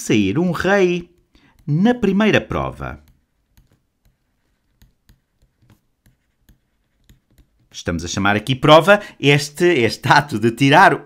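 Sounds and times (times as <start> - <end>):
stylus tapping on drawing tablet: 0.9 - 7.8.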